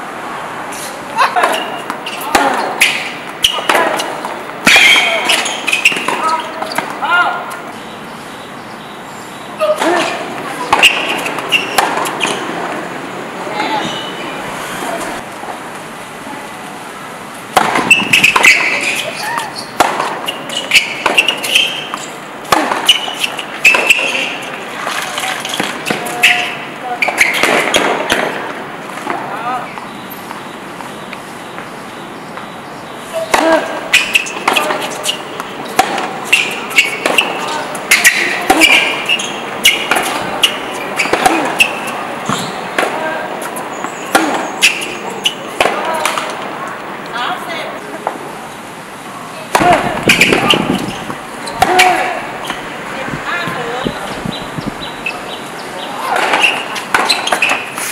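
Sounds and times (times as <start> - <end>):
tennis racket strikes: 0.8 - 7.1, 9.7 - 12.8, 17.5 - 29.2, 33.2 - 46.4, 49.5 - 52.6, 56.0 - 57.9
tennis ball bouncing: 1.2 - 7.8, 9.7 - 13.0, 17.3 - 31.7, 33.2 - 46.5, 49.4 - 52.7, 53.4 - 57.8.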